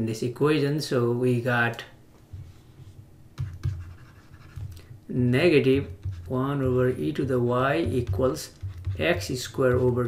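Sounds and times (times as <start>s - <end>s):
stylus scratching strokes: 2.4s - 4.9s, 5.8s - 10.0s
stylus tapping on tablet screen: 3.4s - 5.0s, 5.7s - 10.0s.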